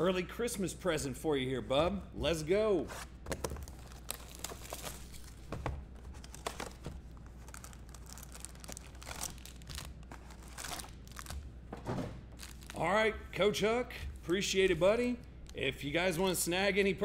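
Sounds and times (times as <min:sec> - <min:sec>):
foil packs crinkling: 0:03.5 - 0:11.4, 0:12.3 - 0:12.9.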